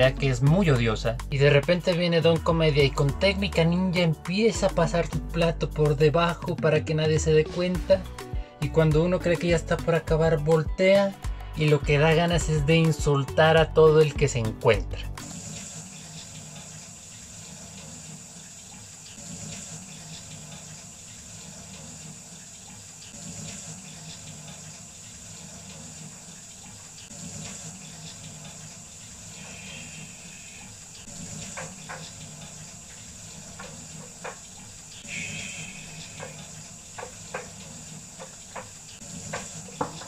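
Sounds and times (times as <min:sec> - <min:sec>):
tap water running into sink: 0:15.2 - 0:40.0
light clicks and knocks: 0:33.4 - 0:34.7, 0:36.0 - 0:40.0.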